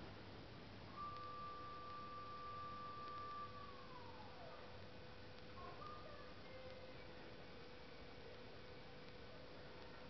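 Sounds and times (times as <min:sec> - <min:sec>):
lower steady tone: 0:00.0 - 0:10.0.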